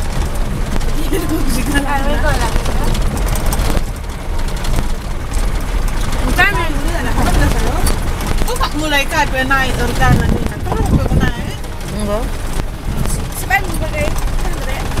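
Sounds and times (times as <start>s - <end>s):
motor engine rumble: 0.0s - 15.0s
person talking: 1.0s - 2.9s, 9.7s - 12.3s
wind on microphone: 4.7s - 15.0s.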